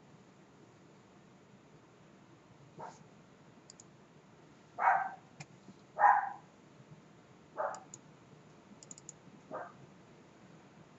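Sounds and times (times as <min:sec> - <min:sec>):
dog barking: 0:02.8 - 0:03.0, 0:04.8 - 0:05.2, 0:06.0 - 0:06.5, 0:07.6 - 0:07.9, 0:09.5 - 0:09.8
computer mouse clicks: 0:03.7 - 0:03.9, 0:07.7 - 0:08.0, 0:08.8 - 0:09.2.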